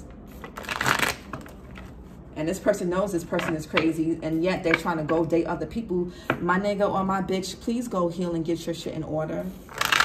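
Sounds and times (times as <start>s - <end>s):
cards being shuffled: 0.3s - 2.0s, 9.7s - 10.0s.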